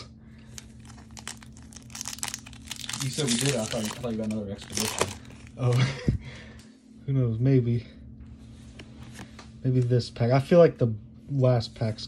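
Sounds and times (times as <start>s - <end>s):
foil wrapper tearing and crinkling: 0.5s - 5.7s.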